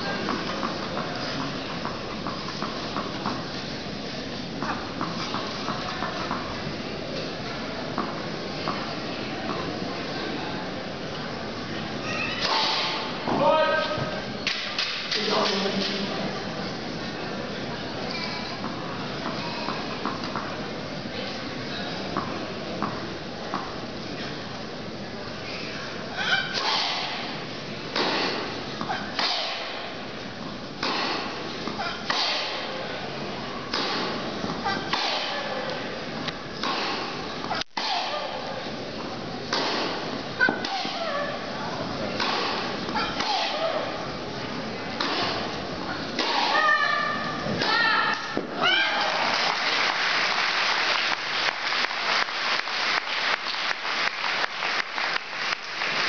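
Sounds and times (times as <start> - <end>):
steady hall noise: 0.0 - 56.0
tennis ball bouncing on court: 0.2 - 3.4, 4.6 - 6.5, 18.6 - 20.5, 33.7 - 35.3, 39.5 - 41.0.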